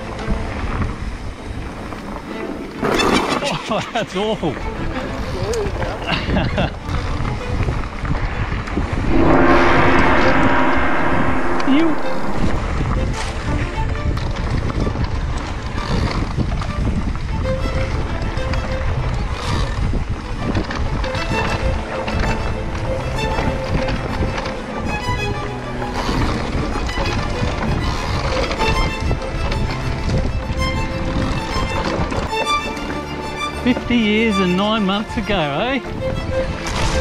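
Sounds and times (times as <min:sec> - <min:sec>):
wind buffeting microphone: 0:08.0 - 0:13.4
loud sustained pitched tone: 0:08.9 - 0:13.2.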